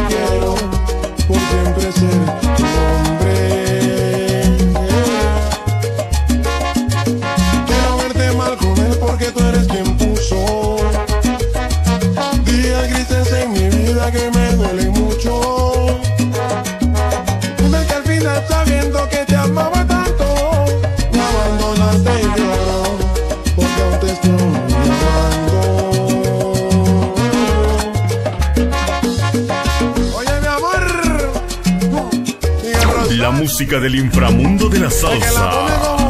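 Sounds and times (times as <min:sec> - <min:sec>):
bass line: 0:00.0 - 0:36.0
instrumental salsa music: 0:00.0 - 0:36.0.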